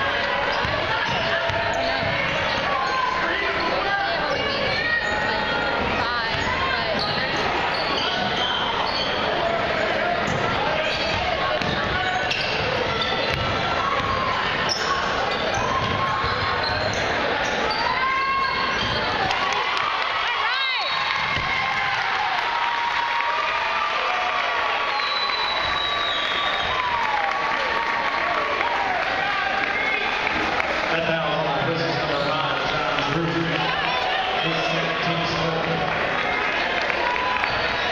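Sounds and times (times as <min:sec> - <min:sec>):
crowd chatter and calls: 0:00.0 - 0:37.9.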